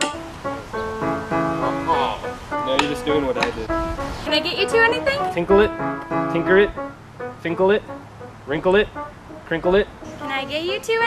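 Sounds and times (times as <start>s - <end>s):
background music melody: 0.0s - 11.0s.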